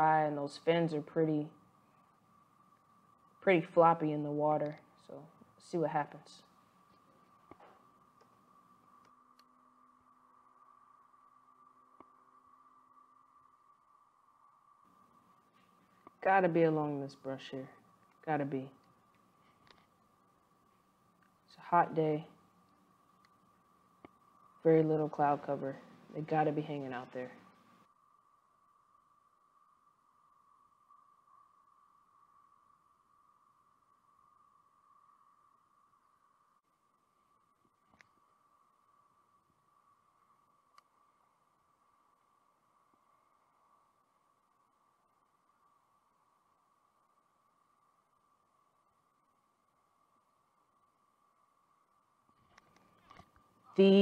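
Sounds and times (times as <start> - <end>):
faint high-pitched hum: 0.0 - 54.0
faint steady high tone: 0.0 - 54.0
faint click: 40.7 - 40.9.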